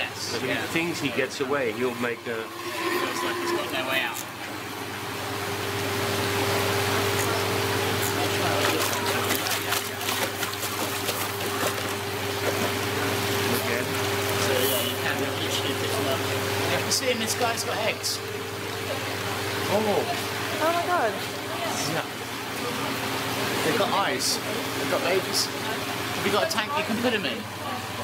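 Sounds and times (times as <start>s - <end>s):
running water rushing: 0.0s - 28.0s
steady background hum: 0.0s - 28.0s
water splashing in plastic tub: 7.3s - 16.6s.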